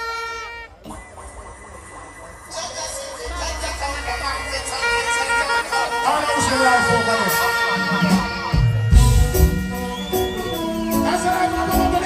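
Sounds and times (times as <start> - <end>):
held horn-like tone: 0.0 - 12.0
dancehall music over sound system: 0.4 - 12.0.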